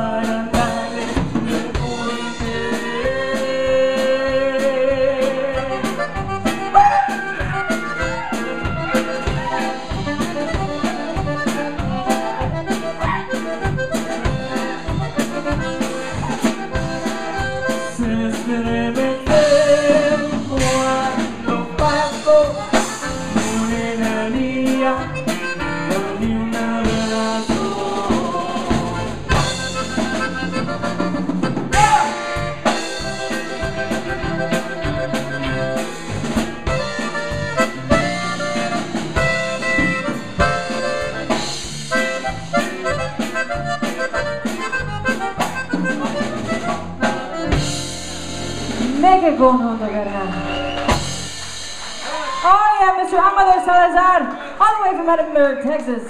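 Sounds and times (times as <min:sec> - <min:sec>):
accordion: 0:00.0 - 0:51.9
live band playing: 0:00.0 - 0:56.0.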